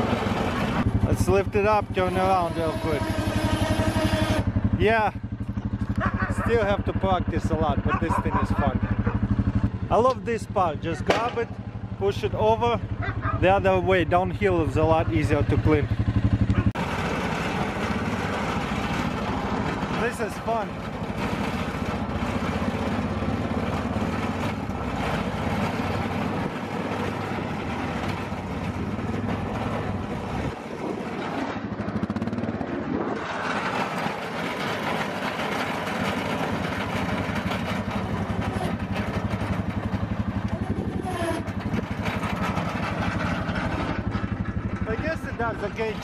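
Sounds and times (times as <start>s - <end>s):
atv engine droning: 0.0s - 46.0s.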